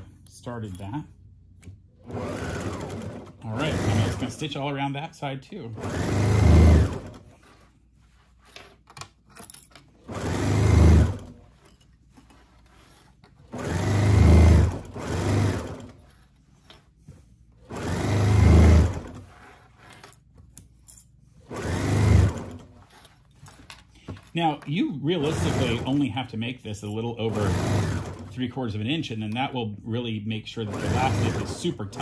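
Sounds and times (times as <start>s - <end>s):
sewing machine stitching: 2.0s - 4.8s, 5.7s - 7.7s, 9.9s - 11.7s, 12.3s - 16.3s, 17.6s - 20.2s, 21.4s - 23.6s, 25.1s - 26.3s, 27.0s - 28.5s, 30.5s - 32.0s.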